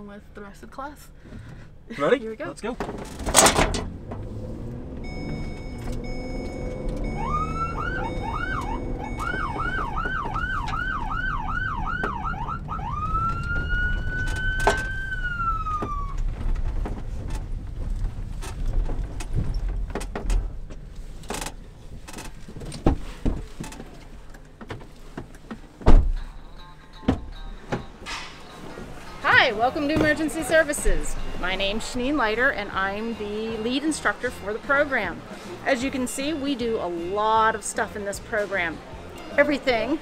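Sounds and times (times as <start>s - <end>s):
low engine rumble: 0.0s - 40.0s
police siren sweeping: 4.2s - 16.4s
thump: 25.8s - 26.3s.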